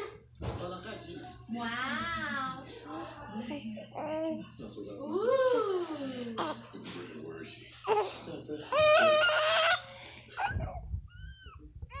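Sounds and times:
faint squeaky sounds: 8.7 - 12.0.

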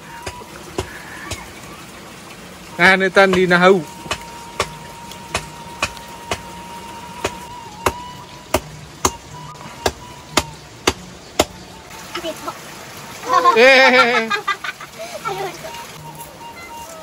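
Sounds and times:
sharp knocks: 3.2 - 6.5.

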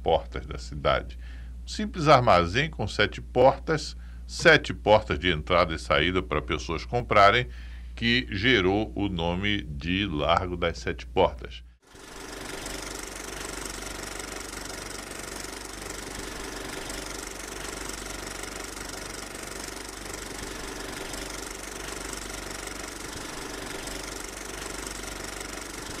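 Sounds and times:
machine running with hiss: 11.9 - 26.0.

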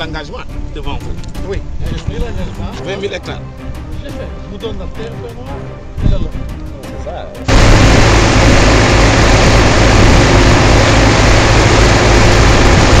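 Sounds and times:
steady low hum: 7.5 - 13.0
water gushing from pipes: 7.5 - 13.0.

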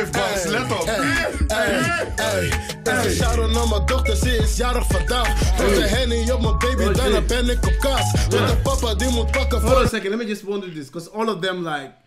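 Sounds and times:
hip hop beat with heavy bass: 0.0 - 10.2
man rapping: 0.0 - 11.9.

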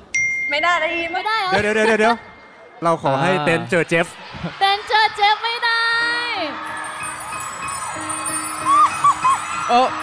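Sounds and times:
twinkling chime: 6.8 - 10.0.

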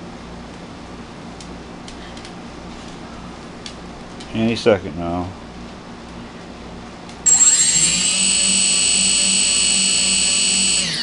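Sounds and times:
motors whining: 7.2 - 11.0.

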